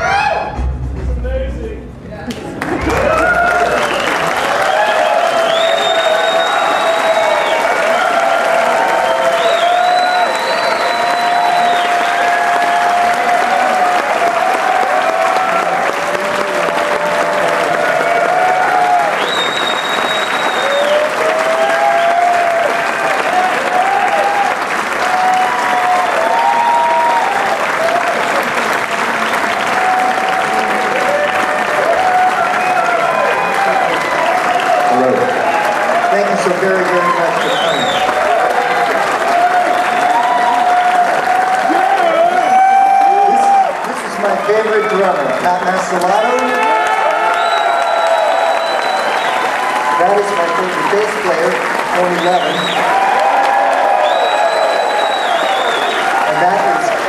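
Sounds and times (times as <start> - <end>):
shouts: 0.0 - 0.6, 2.9 - 19.4, 20.4 - 28.4, 29.6 - 43.9, 46.0 - 51.4, 52.0 - 57.0
audience applauding and cheering: 0.0 - 57.0
shrill whistles: 3.8 - 12.8, 19.1 - 21.2, 37.4 - 38.2, 47.3 - 49.5, 53.9 - 56.1.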